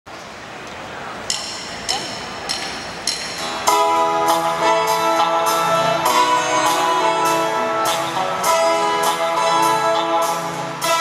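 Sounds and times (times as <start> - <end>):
crowd noise: 0.1 - 11.0
count-in clicks: 1.3 - 3.8
live band playing: 1.3 - 11.0.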